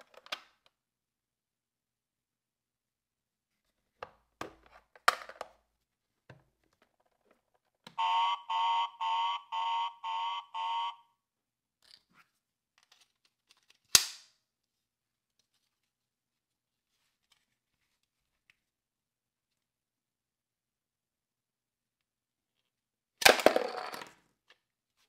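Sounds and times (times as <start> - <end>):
electronic alarm beeping: 8.0 - 11.1.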